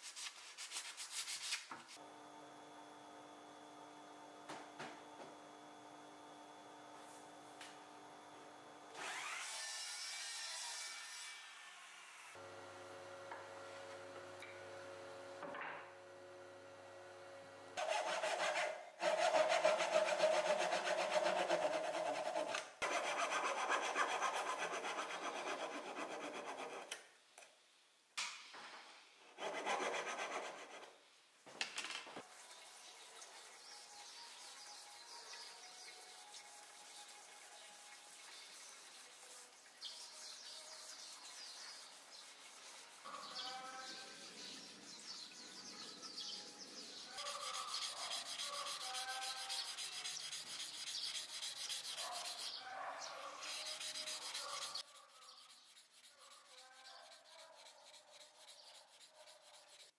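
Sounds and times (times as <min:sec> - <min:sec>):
hand saw rasping through wood: 0:17.8 - 0:26.9, 0:29.4 - 0:30.8, 0:47.2 - 0:52.6, 0:53.4 - 0:59.9.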